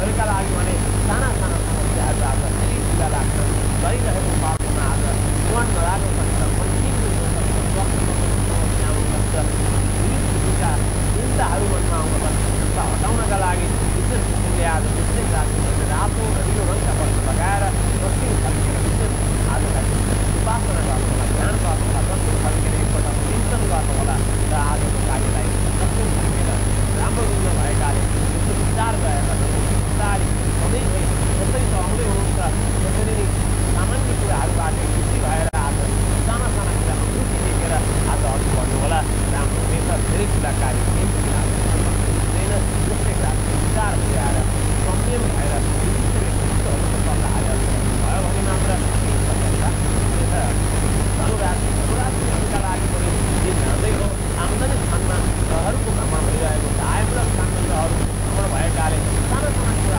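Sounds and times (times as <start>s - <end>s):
faint high-pitched whine: 0.0s - 59.9s
loud low hum: 0.0s - 59.9s
man talking: 0.0s - 59.9s.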